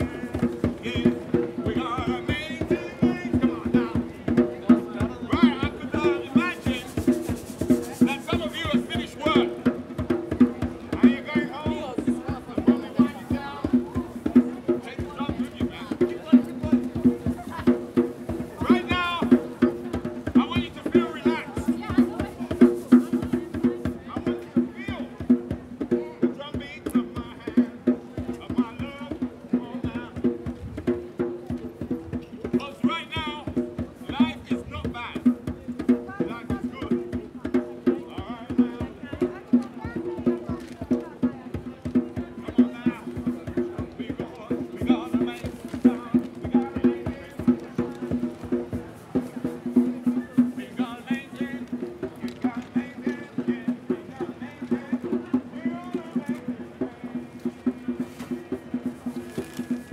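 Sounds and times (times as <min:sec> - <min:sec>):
rapid hand-drum strokes: 0:00.0 - 0:59.9.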